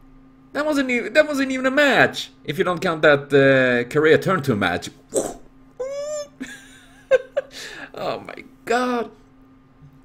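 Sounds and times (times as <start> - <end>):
high-pitched vocal squeak: 5.2 - 6.4.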